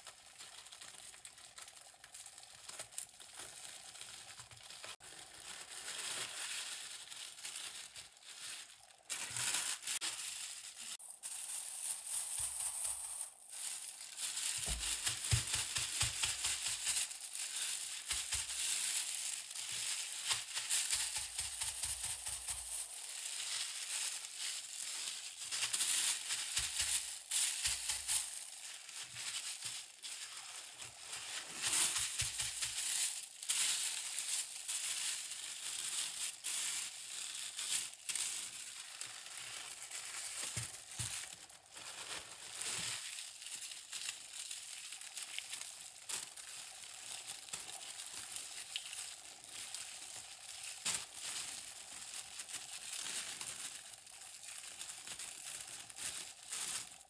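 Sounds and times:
crinkling and rustling: 0:00.0 - 0:57.0.

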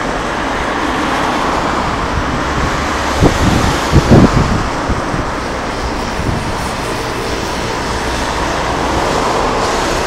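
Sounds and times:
passing vehicles: 0:00.0 - 0:10.0.

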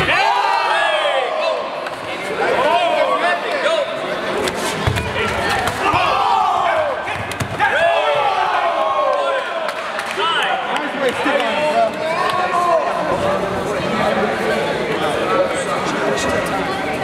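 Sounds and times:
people shouting: 0:05.2 - 0:09.6.

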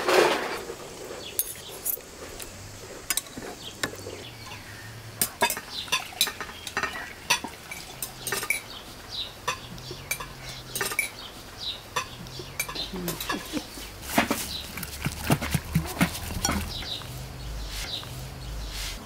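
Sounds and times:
spoons clinking on bowls and jar: 0:05.2 - 0:08.7, 0:09.5 - 0:11.2, 0:12.0 - 0:13.7, 0:14.3 - 0:16.9.

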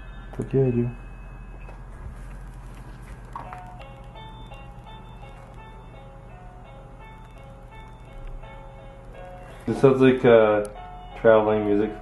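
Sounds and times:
electronic beeping lullaby tune: 0:00.0 - 0:12.0
steady low hum: 0:00.0 - 0:12.0.

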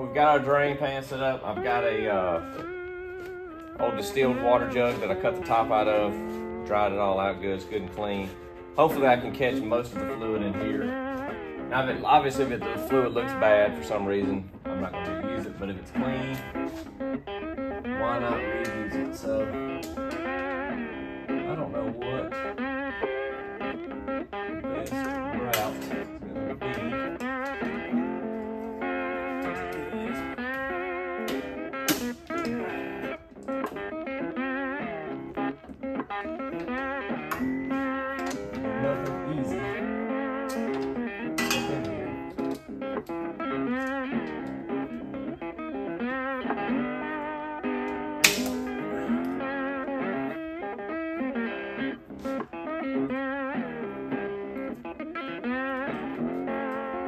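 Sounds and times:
bluesy slide guitar music: 0:00.0 - 0:57.0.

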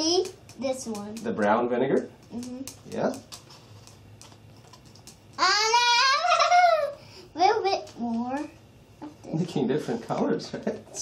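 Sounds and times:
excited high voice: 0:05.4 - 0:07.8.

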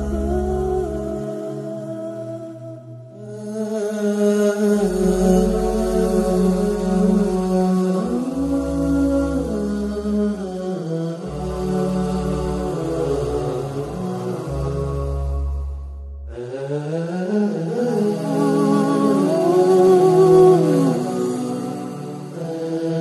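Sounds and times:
chanted vocal line: 0:00.0 - 0:23.0
low drone: 0:00.0 - 0:23.0.

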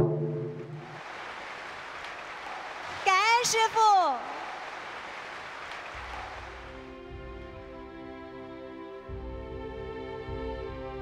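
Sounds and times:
audience applauding: 0:00.5 - 0:07.2.

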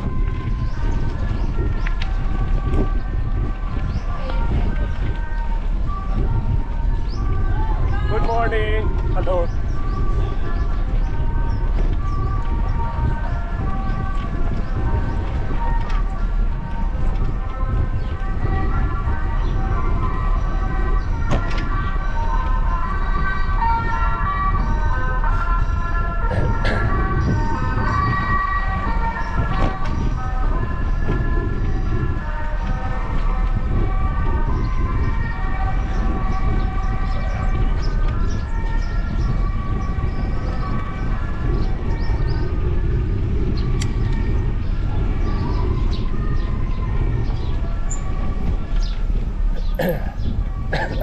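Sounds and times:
wind rumbling on microphone: 0:00.0 - 0:51.0
small birds chirping: 0:06.8 - 0:15.8, 0:34.4 - 0:42.7, 0:43.5 - 0:51.0.

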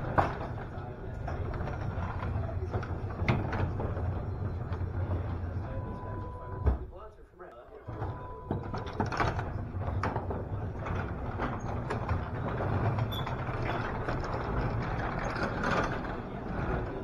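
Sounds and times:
door rollers clicking and rattling: 0:00.0 - 0:06.7, 0:07.9 - 0:17.0
garage door opener motor hum: 0:00.0 - 0:06.7, 0:07.8 - 0:17.0.

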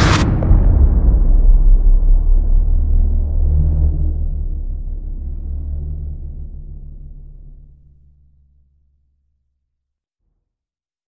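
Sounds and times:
deep cinematic boom: 0:00.0 - 0:09.2
low steady tones: 0:00.0 - 0:09.3.

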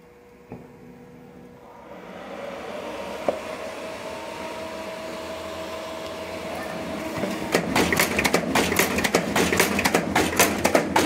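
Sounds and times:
faint rising whine: 0:00.0 - 0:07.5
machine hum: 0:00.0 - 0:11.0
machine clicking and clattering: 0:07.5 - 0:11.0.

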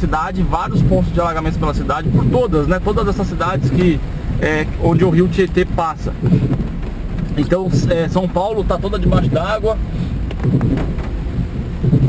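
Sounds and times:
heavy rain on car roof: 0:00.0 - 0:12.0
tyres running through water: 0:00.0 - 0:12.0.

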